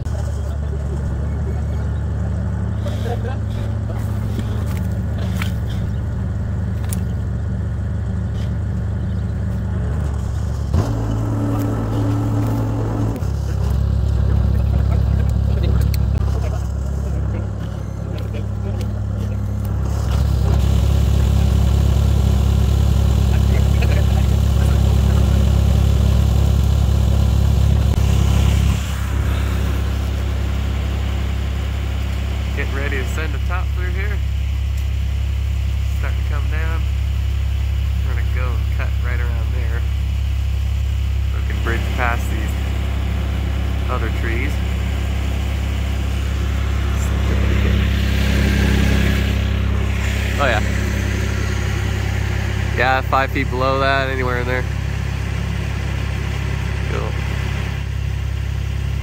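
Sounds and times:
skid steer engine running: 0.0s - 59.0s.

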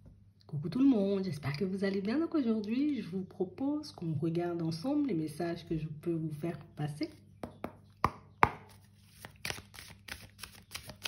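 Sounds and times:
cards tapping and snapping: 8.0s - 11.0s.

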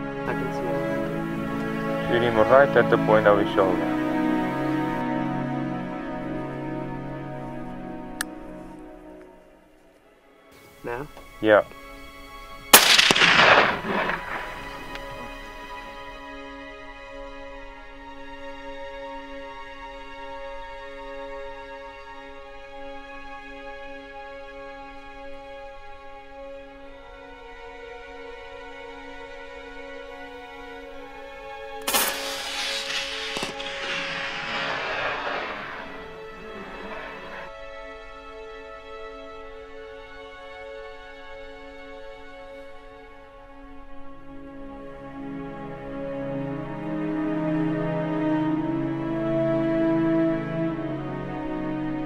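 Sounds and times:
background music with sustained tones: 0.0s - 52.0s
sharp crack: 12.7s - 16.0s, 31.1s - 37.5s
rifle shot: 12.8s - 15.8s, 31.8s - 37.5s.

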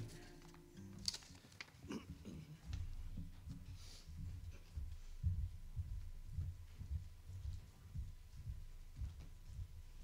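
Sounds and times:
footsteps on carpet: 2.1s - 10.0s.

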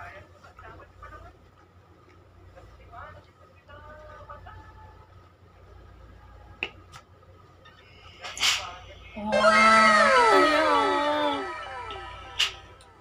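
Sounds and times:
comic falling whistle effect: 9.2s - 12.7s.

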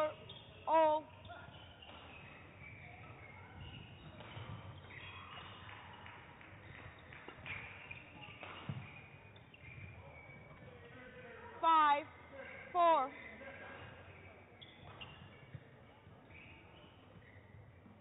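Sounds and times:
shoes squeaking on court floor: 0.0s - 11.4s, 12.1s - 18.0s.

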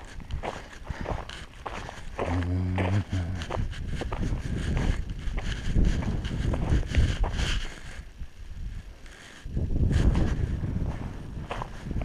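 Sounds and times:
footsteps on gravelly dirt: 0.0s - 12.0s
wind rumbling on microphone: 0.0s - 12.0s.

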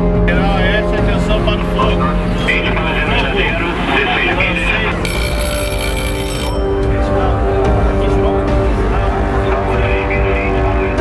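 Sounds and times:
background music: 0.0s - 11.0s
high electronic alarm tone: 5.1s - 6.7s.

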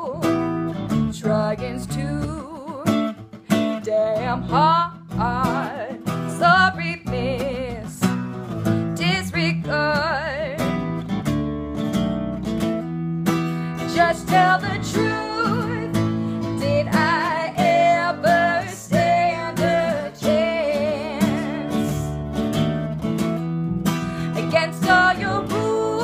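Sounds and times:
woman singing: 0.0s - 0.5s, 1.1s - 8.1s, 8.9s - 10.8s, 13.7s - 22.2s, 24.2s - 26.0s
acoustic guitar strumming: 0.0s - 26.0s
electric bass: 6.6s - 26.0s.

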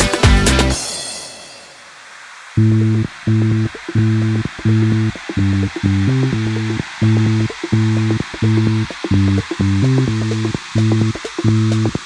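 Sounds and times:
big-band funk music: 0.0s - 0.9s
steady high hiss: 0.0s - 12.0s
electric bass repeated low notes: 2.6s - 12.0s.

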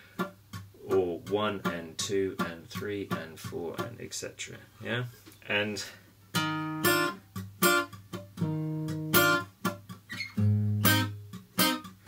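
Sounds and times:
fingerpicked acoustic guitar: 0.0s - 4.1s, 6.2s - 12.0s.

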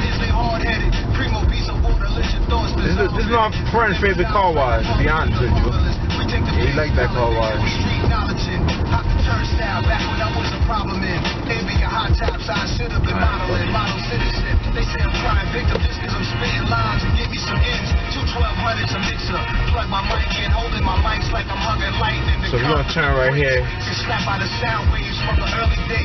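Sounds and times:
car engine: 0.0s - 26.0s
music with vocals on car stereo: 0.0s - 26.0s
road noise: 0.0s - 26.0s.

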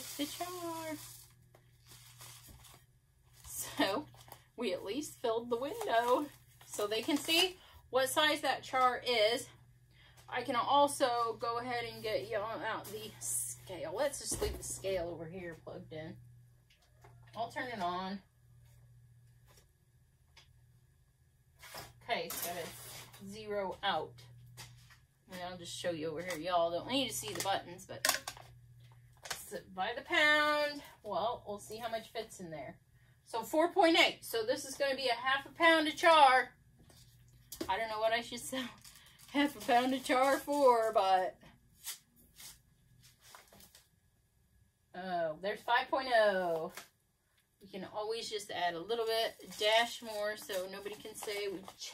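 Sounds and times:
paper bag rustling: 0.0s - 4.4s, 5.4s - 7.4s, 21.6s - 23.3s, 38.8s - 41.0s, 49.2s - 51.9s
steady low hum: 0.0s - 51.9s.

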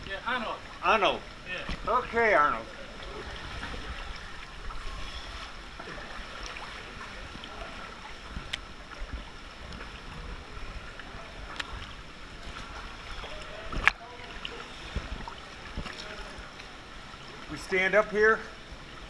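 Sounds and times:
small drips and splashes: 0.0s - 19.0s
steady rush of water: 0.0s - 19.0s
water lapping and splashing: 0.0s - 19.0s.

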